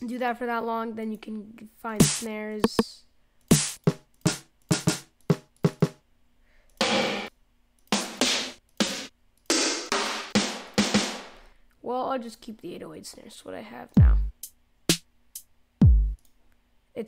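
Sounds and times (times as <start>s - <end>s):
drum machine snare hits: 2.0s - 2.8s, 3.5s - 6.0s, 6.8s - 7.3s, 7.9s - 11.5s, 14.0s - 16.2s.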